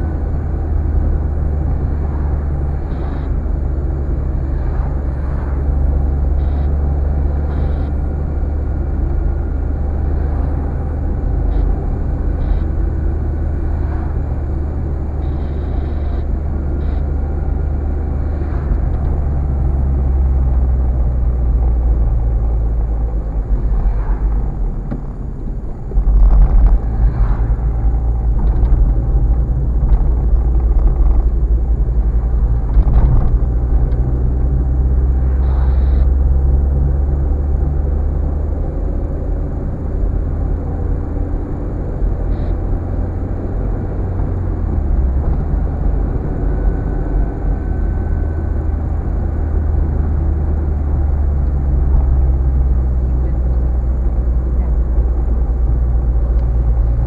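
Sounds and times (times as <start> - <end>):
car engine and tyre rumble: 0.0 - 57.0.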